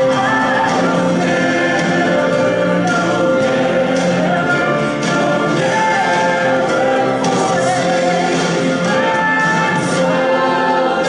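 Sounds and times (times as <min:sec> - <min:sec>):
choir singing long held notes: 0:00.0 - 0:11.0.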